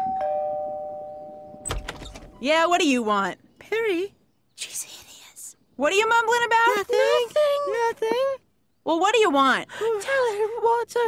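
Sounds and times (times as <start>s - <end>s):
two-tone doorbell chime: 0.0s - 1.7s
door latch click and thump: 1.6s - 2.4s.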